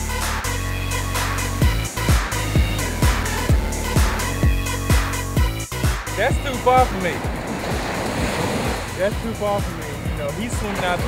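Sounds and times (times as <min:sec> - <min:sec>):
music beat thumping: 0:00.0 - 0:11.0
ocean surf washing in: 0:01.1 - 0:05.2, 0:06.1 - 0:11.0.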